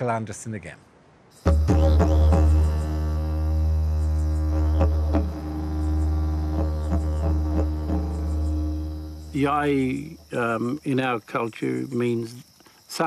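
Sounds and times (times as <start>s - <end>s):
didgeridoo drone: 1.5s - 10.1s.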